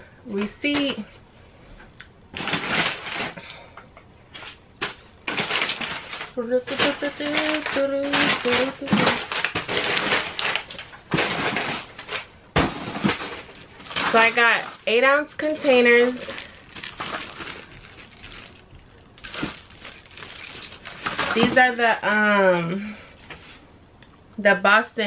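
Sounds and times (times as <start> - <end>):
packing paper rustling: 2.3 - 3.6, 4.3 - 23.6
plastic bag crinkling: 2.3 - 3.6, 4.3 - 23.6.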